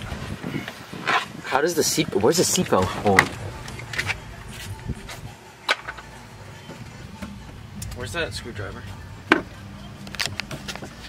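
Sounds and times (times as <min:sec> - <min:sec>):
low steady hum: 0:02.7 - 0:11.0.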